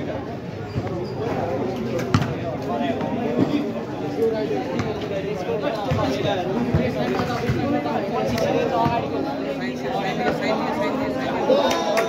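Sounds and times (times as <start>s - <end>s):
chatter of people: 0.0s - 12.0s
basketball bouncing on concrete: 2.1s - 2.4s, 4.7s - 5.0s, 5.8s - 9.1s.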